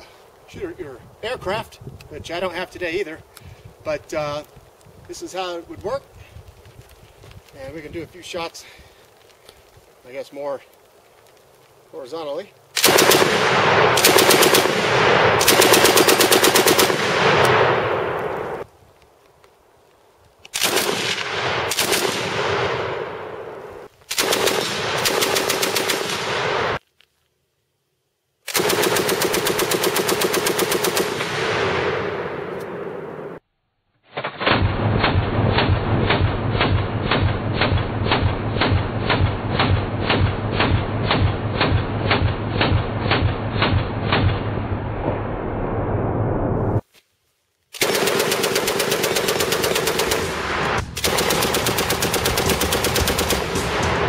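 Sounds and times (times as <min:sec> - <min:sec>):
machine gun automatic bursts: 0:12.8 - 0:17.8, 0:20.6 - 0:22.4, 0:24.1 - 0:26.7, 0:28.5 - 0:32.0, 0:47.8 - 0:54.0
separate gun shots: 0:12.8 - 0:18.6, 0:20.5 - 0:26.8, 0:28.5 - 0:33.4, 0:34.1 - 0:45.2, 0:47.8 - 0:54.0.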